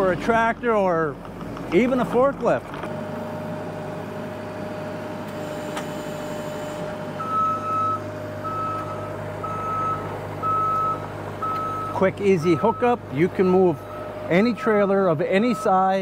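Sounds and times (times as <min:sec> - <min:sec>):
loader engine running: 0:00.0 - 0:16.0
backup alarm beeping: 0:05.4 - 0:14.8, 0:15.4 - 0:15.9.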